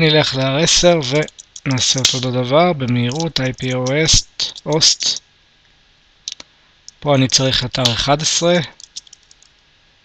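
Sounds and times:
computer keyboard keystrokes: 1.1 - 2.2, 2.9 - 4.9, 8.8 - 9.5.

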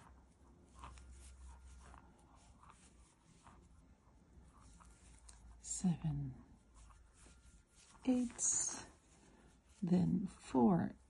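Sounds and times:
crochet hook scratching yarn: 0.0 - 11.0
person speaking quietly: 8.0 - 9.0.

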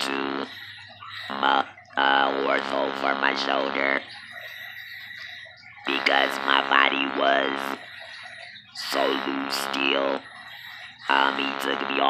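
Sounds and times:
breathing through a tracheostomy: 0.0 - 1.6, 4.0 - 6.4, 7.6 - 11.6
person speaking: 0.0 - 12.0.

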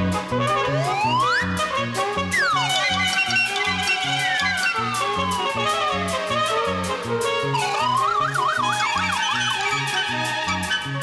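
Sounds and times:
bouncing bass line: 0.0 - 11.0
wobbling whistle-like tone: 0.2 - 11.0.

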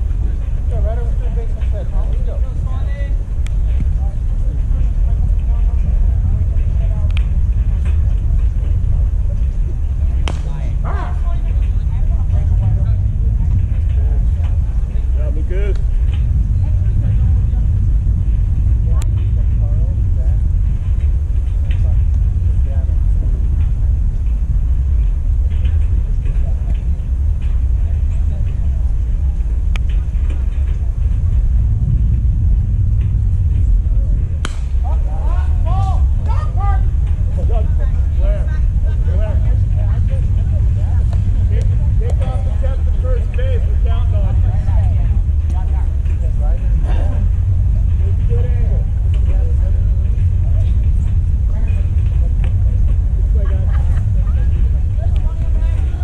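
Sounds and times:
distant voices calling out: 0.0 - 56.0
low rumble on microphone: 0.0 - 56.0.

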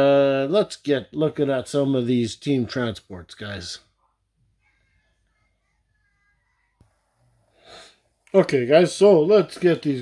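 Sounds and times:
person breathing: 6.9 - 8.3
person speaking: 8.2 - 10.0.

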